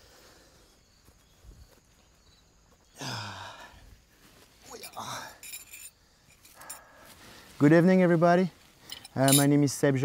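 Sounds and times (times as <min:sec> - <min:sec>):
man sighing: 0:03.0 - 0:03.8, 0:04.8 - 0:05.4.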